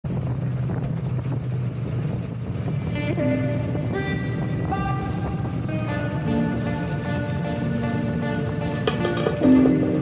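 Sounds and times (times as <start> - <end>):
wind rushing: 0.1 - 8.8
motorcycle engine running: 0.1 - 10.0.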